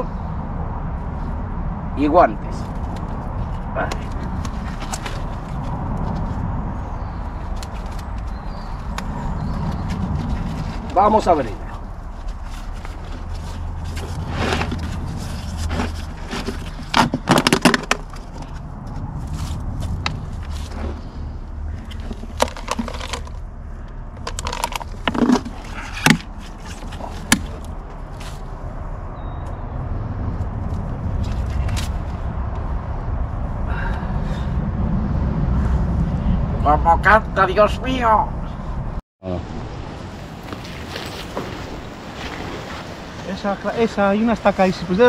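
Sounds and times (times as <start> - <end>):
steady low rumble: 0.0 - 40.5.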